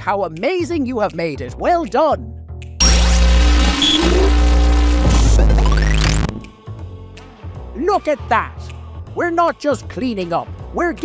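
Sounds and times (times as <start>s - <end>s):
cartoon engine running: 2.8s - 6.4s.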